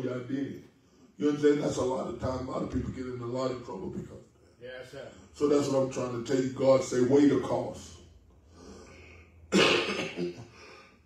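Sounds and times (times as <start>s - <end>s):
faint breath: 8.4s - 9.5s, 10.5s - 11.0s
man coughing: 9.5s - 10.8s.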